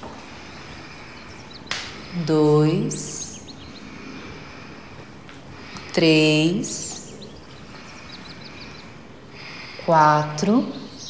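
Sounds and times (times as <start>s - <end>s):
faint bird chirps: 0.3s - 11.0s
sharp intake of breath: 3.8s - 6.0s, 7.7s - 9.9s.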